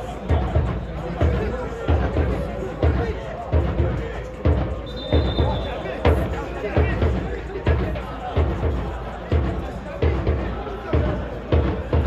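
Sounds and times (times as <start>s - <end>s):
crowd singing or chanting: 0.0s - 12.0s
bass drum beating: 0.3s - 12.0s.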